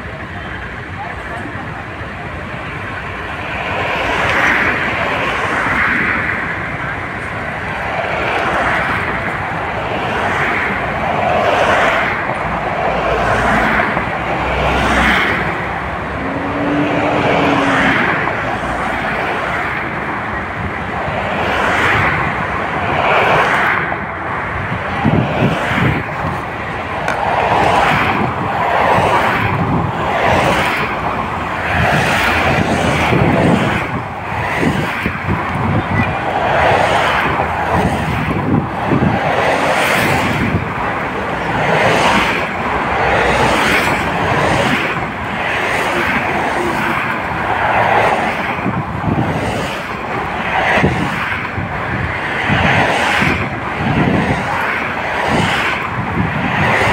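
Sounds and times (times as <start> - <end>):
road traffic driving past: 0.0 - 56.9
low rising and falling tone: 15.4 - 19.0.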